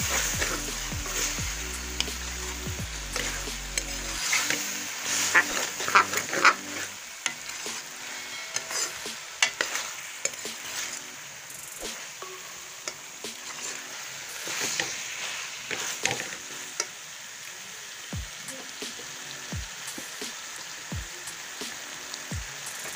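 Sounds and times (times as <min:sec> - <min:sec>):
spoon stirring and scraping: 0:00.0 - 0:11.2, 0:11.8 - 0:16.6
potatoes sizzling in a pan: 0:00.0 - 0:22.9.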